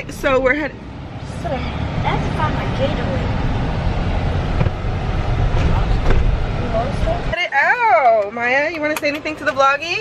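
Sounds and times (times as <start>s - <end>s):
road and wind rumble in car: 0.0s - 10.0s.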